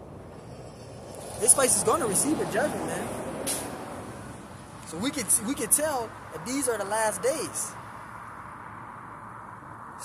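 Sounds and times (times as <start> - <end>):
bus and street traffic passing: 0.0 - 10.0.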